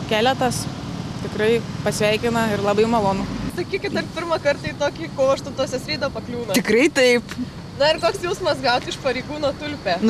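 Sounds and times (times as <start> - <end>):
road traffic hum: 0.0 - 10.0
woman talking: 1.2 - 10.0.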